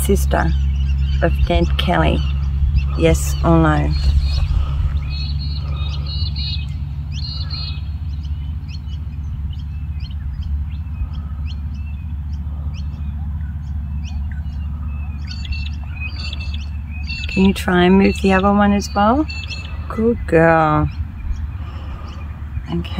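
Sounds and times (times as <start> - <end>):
small birds chirping: 0.0 - 22.9
steady low rumble: 0.0 - 22.9.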